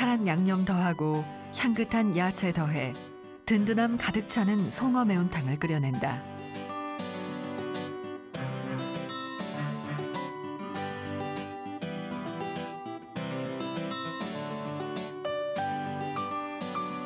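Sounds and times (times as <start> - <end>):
plucked acoustic guitar music: 4.1 - 17.0.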